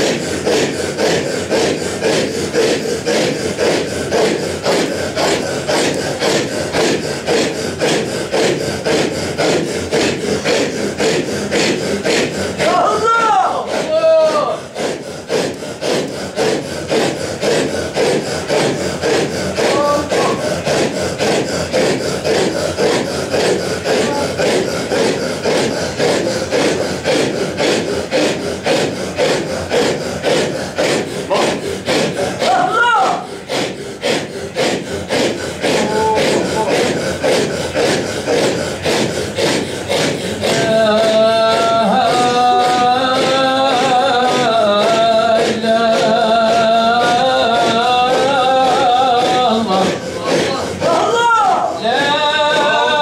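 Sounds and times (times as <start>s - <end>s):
men chanting with rasping breath: 0.0s - 53.0s.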